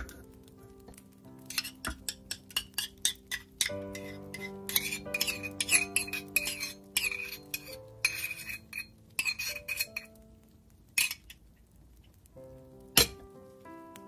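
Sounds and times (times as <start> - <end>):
background music: 0.0 - 11.1, 12.4 - 14.0
metal saucepan clinking on jug: 1.5 - 10.1.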